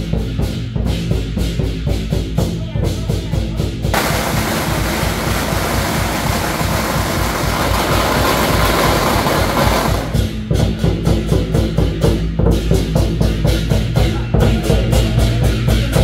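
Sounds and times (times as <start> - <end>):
drum beat: 0.1 - 16.0
firecrackers crackling: 3.9 - 10.4.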